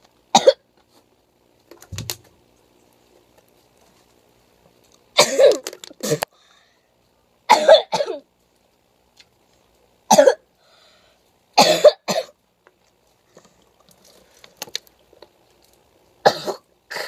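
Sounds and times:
girl coughing: 0:00.4 - 0:00.6, 0:05.2 - 0:06.2, 0:07.5 - 0:08.2, 0:10.1 - 0:10.4, 0:11.6 - 0:12.3, 0:16.2 - 0:17.0.

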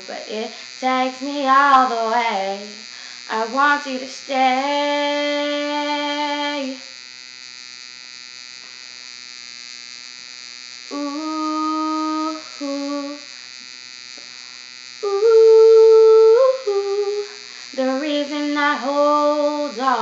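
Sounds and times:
girl singing: 0:00.0 - 0:06.8, 0:10.9 - 0:13.3, 0:15.0 - 0:20.0
electrical hum and hiss: 0:00.0 - 0:20.0
girl humming: 0:10.9 - 0:13.3, 0:15.0 - 0:20.0.

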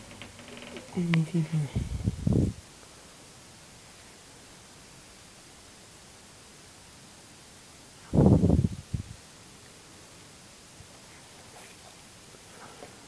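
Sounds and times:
microphone handling noise: 0:00.0 - 0:02.6.

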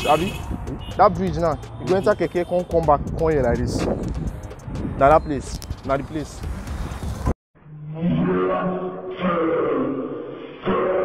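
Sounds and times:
long low roar: 0:07.8 - 0:10.2.

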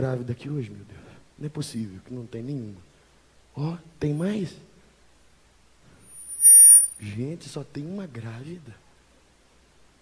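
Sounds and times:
microphone feedback squeal: 0:06.1 - 0:07.0.

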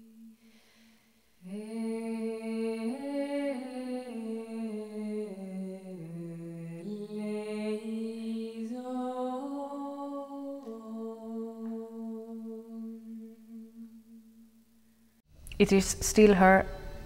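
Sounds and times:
woman singing unaccompanied: 0:01.4 - 0:14.0.

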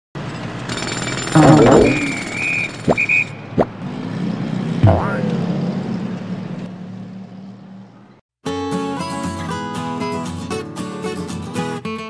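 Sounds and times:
steady high tone: 0:01.4 - 0:02.4.

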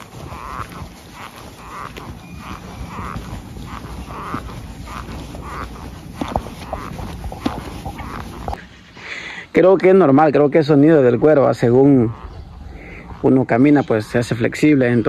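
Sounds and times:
leather boots creaking: 0:00.0 - 0:08.6.

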